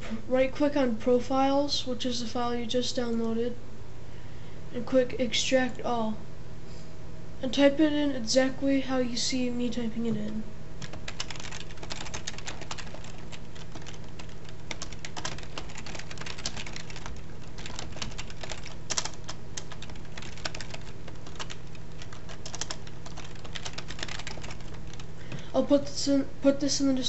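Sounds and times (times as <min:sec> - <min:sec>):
computer keyboard typing: 0:10.8 - 0:25.1.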